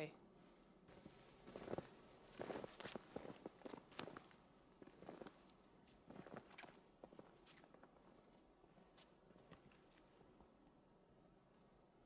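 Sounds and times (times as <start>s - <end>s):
footsteps in snow: 0.9s - 10.1s.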